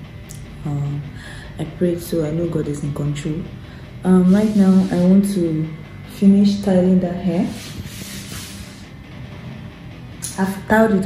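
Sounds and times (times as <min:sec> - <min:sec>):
steady low hum: 0:00.0 - 0:11.0
even hiss: 0:04.2 - 0:05.2, 0:07.4 - 0:09.0.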